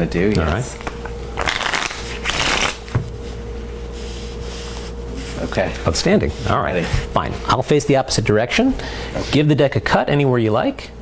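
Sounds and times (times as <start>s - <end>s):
faint steady hum: 0.0s - 11.0s
playing cards shuffling: 1.4s - 3.0s.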